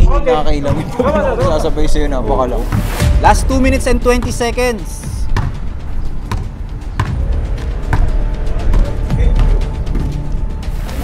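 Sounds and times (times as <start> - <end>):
background music with deep bass: 0.0 - 11.0
basketball bouncing on court: 5.3 - 5.6, 6.2 - 7.2.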